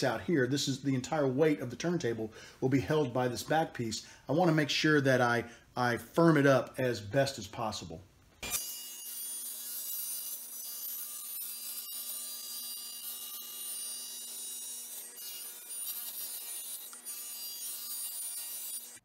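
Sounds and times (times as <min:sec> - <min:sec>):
table saw cutting acrylic: 0:08.4 - 0:19.0.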